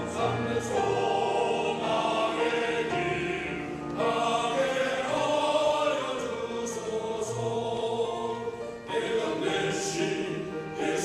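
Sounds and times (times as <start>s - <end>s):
men's choir singing: 0.0s - 11.0s.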